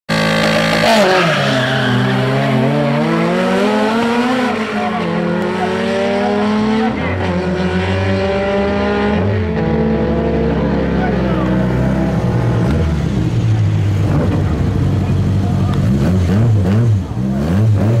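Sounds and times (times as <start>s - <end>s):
race car engines revving: 0.1s - 18.0s.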